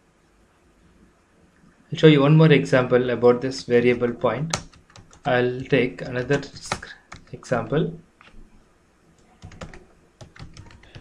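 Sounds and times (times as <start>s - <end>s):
computer keyboard key clicks: 4.5s - 7.3s, 9.4s - 11.0s.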